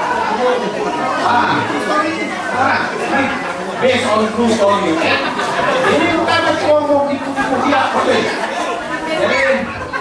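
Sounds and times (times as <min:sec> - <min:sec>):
people talking in echoing hall: 0:00.0 - 0:10.0.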